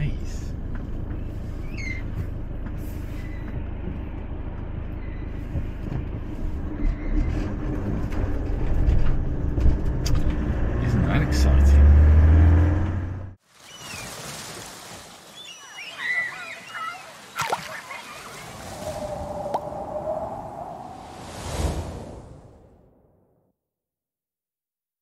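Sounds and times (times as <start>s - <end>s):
road noise: 0.0s - 13.4s, 16.0s - 23.2s
van engine rumble: 0.0s - 13.4s.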